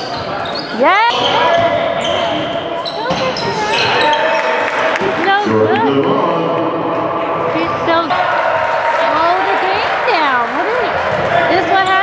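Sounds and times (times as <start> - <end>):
basketball bouncing on court: 0.0 - 4.1, 10.5 - 12.0
shoe squeal: 0.0 - 4.5, 11.7 - 12.0
voices echoing in hall: 0.0 - 12.0.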